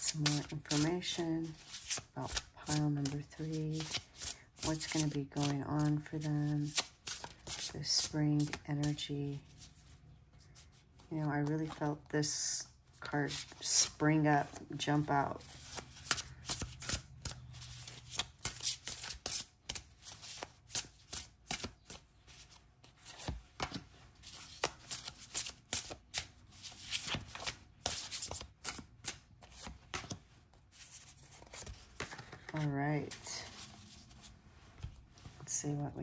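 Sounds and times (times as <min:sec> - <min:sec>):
cards being shuffled: 0:00.0 - 0:09.0, 0:15.0 - 0:35.4
cards dealt onto wooden table: 0:30.9 - 0:33.7.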